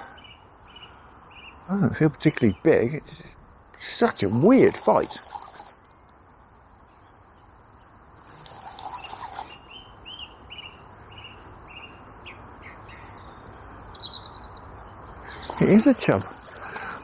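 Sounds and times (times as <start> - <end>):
faint steady hiss: 0.0 - 17.0
small bird chirping: 5.0 - 16.8.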